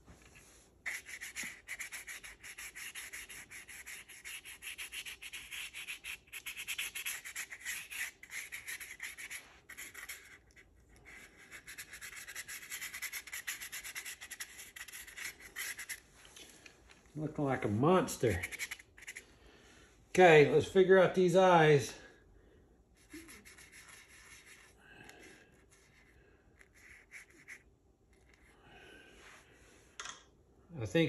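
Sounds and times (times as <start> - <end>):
paintbrush rubbing on cardboard: 0.2 - 16.2, 18.1 - 19.2, 23.0 - 28.5.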